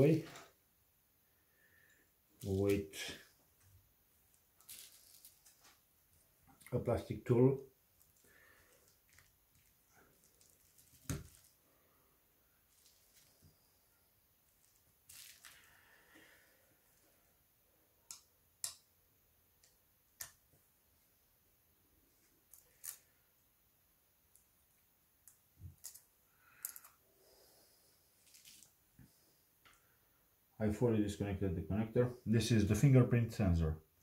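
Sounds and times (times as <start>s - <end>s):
soft rustle: 4.2s - 6.6s, 7.9s - 17.2s, 25.7s - 30.0s.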